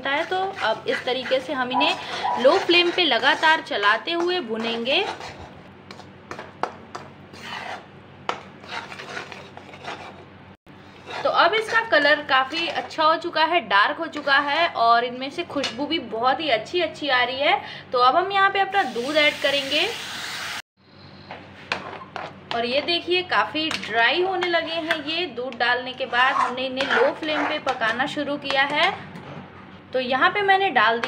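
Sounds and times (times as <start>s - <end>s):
lentils frying in ghee: 0.0s - 6.5s, 10.8s - 14.8s
steel spatula scraping a pan: 0.0s - 10.2s, 10.8s - 13.1s, 14.2s - 14.7s, 24.3s - 25.2s, 26.0s - 28.0s
stirring thick mixture: 0.0s - 13.1s, 14.2s - 14.7s, 25.9s - 28.7s.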